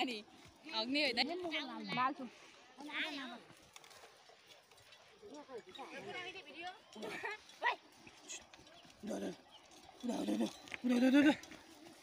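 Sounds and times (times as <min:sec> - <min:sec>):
farm animals calling: 0:05.8 - 0:12.0.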